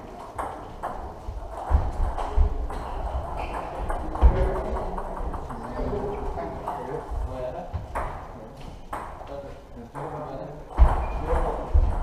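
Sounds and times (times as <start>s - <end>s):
table tennis balls clicking: 0.2s - 6.9s.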